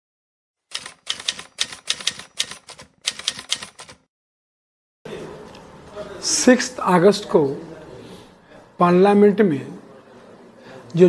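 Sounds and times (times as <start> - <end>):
sharp clicking strokes: 0.7 - 4.1.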